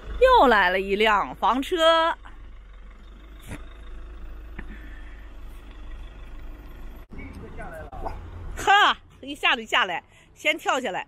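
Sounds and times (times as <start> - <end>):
van engine low rumble: 0.0 - 11.0.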